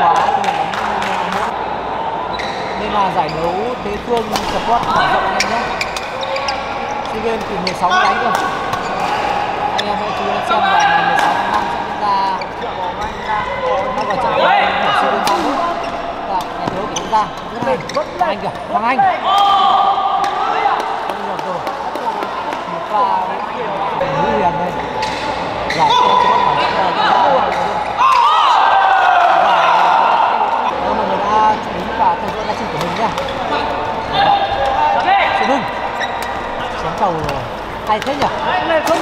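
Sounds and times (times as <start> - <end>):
murmur of voices: 0.0 - 39.0.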